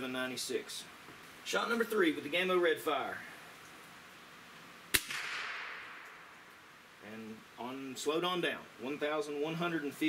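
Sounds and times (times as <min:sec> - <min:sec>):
air rifle shot: 0:04.9 - 0:06.3.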